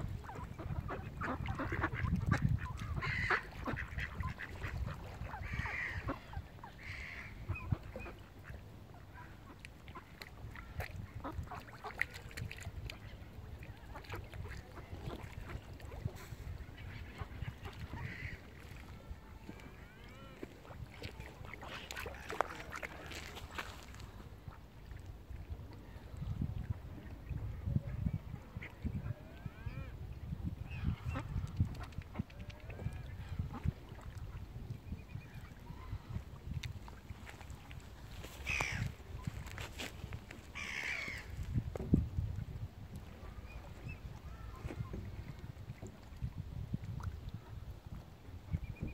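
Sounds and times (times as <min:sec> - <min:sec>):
ducks quacking: 0:00.1 - 0:10.2, 0:11.0 - 0:24.6, 0:37.2 - 0:41.4.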